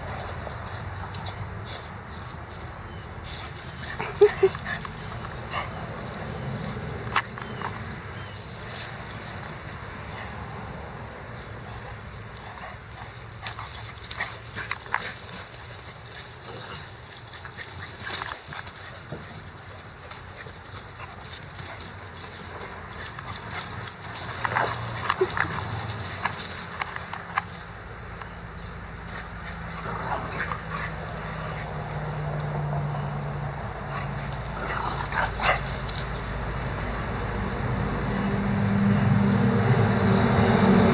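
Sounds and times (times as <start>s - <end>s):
dogs playing: 0.0s - 38.4s
low steady engine hum: 0.0s - 40.9s.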